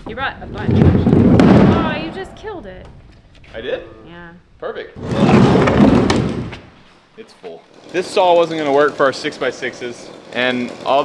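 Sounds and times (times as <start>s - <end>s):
water tank scraping: 5.0s - 7.0s.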